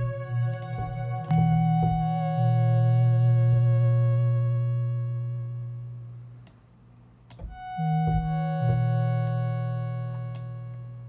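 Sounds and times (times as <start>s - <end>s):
synthesizer low note: 0.0s - 6.4s, 7.4s - 11.0s.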